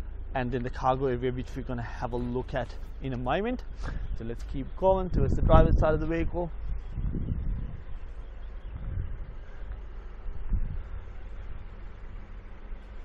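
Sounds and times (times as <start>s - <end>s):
soft low thumps: 3.6s - 13.0s
wind buffeting microphone: 3.6s - 13.0s.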